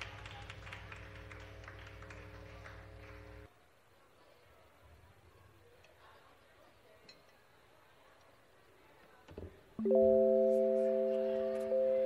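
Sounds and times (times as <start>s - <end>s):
electrical hum from amplification: 0.0s - 3.5s.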